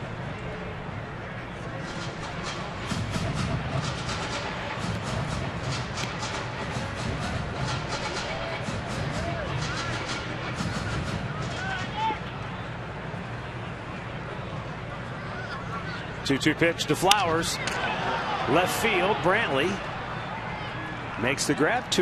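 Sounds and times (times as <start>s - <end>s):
stadium crowd noise: 0.0s - 22.0s
music over stadium speakers: 1.8s - 13.4s
fans calling out: 15.0s - 22.0s.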